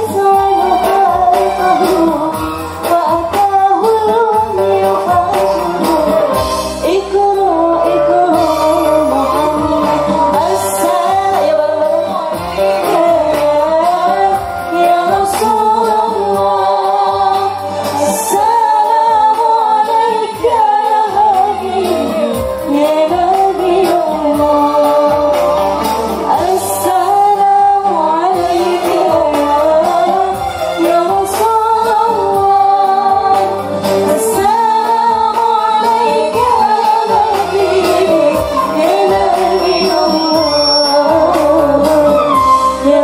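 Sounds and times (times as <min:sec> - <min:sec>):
electronic keyboard: 0:00.0 - 0:43.0
oud: 0:00.0 - 0:43.0
woman singing: 0:00.0 - 0:43.0.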